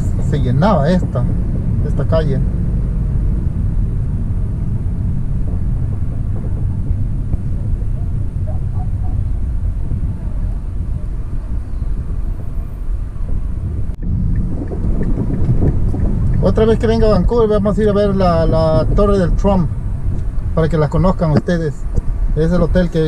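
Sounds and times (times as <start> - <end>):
car engine and tyres rumbling: 0.0 - 23.0.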